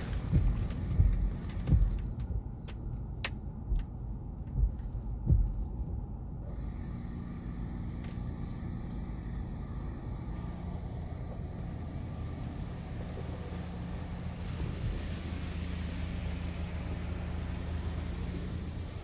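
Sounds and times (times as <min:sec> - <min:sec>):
water spray hissing on car: 0:00.0 - 0:02.2, 0:06.5 - 0:19.0
steady low hum: 0:00.0 - 0:19.0.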